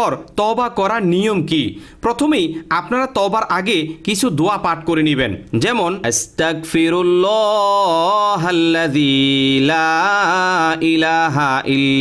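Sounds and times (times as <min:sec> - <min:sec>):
man chanting melodically: 0:00.0 - 0:12.0.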